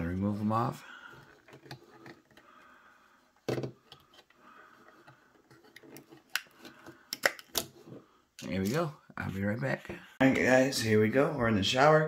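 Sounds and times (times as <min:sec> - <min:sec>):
plastic rubbing and rattling: 0:01.2 - 0:02.5, 0:03.4 - 0:07.9
plastic knock: 0:03.5 - 0:03.8.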